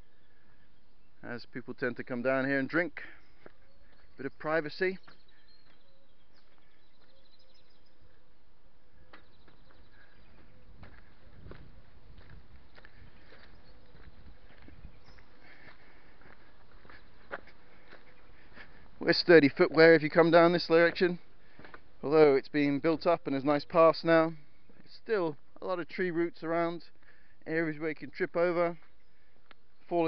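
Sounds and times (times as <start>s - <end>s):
faint bird calls: 0.0s - 1.4s, 2.7s - 19.1s, 28.8s - 30.0s
footsteps on dirt path: 2.9s - 25.6s, 26.8s - 27.3s, 28.0s - 30.0s.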